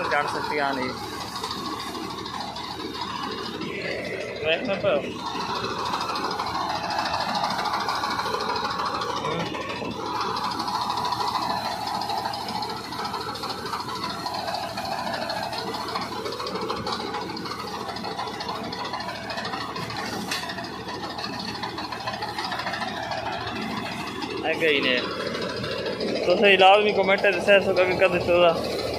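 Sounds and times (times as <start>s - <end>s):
tractor diesel engine under load: 0.0s - 28.9s.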